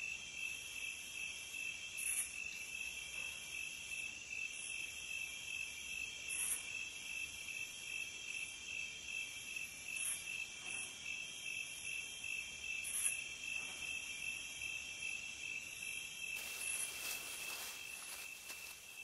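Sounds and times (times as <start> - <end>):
crickets trilling: 0.1 - 19.0.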